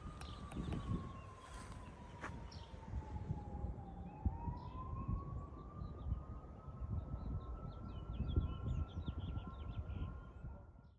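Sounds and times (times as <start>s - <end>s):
small birds chirping: 0.0s - 2.9s
siren wailing: 0.0s - 10.7s.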